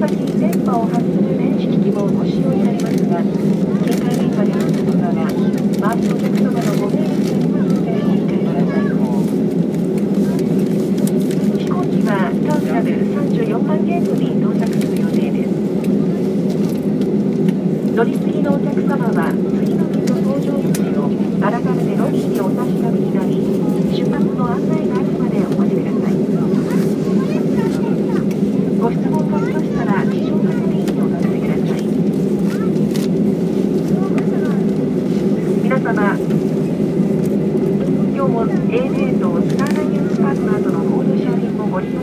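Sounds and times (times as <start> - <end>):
faint voices: 0.0 - 42.0
jet engine cabin drone: 0.0 - 42.0.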